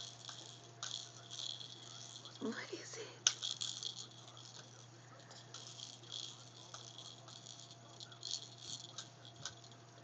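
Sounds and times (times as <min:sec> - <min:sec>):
plastic toys rattling: 0:00.0 - 0:10.0.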